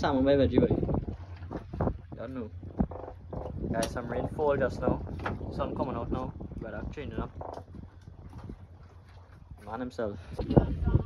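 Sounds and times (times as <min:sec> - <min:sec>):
low rumble of wind and water: 0:00.0 - 0:11.0.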